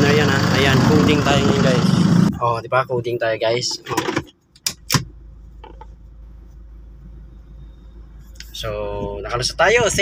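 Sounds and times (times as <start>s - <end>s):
suv engine rumbling inside cabin: 0.0s - 10.0s.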